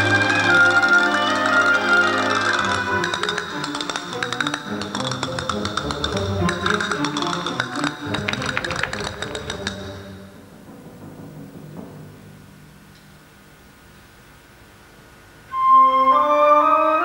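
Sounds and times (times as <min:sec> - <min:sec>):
orchestra playing dance music: 0:00.0 - 0:10.3
rapid sharp percussive clicks: 0:00.1 - 0:10.2.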